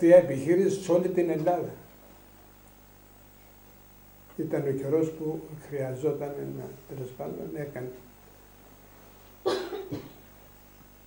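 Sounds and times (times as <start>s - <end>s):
man coughing: 9.4s - 10.2s.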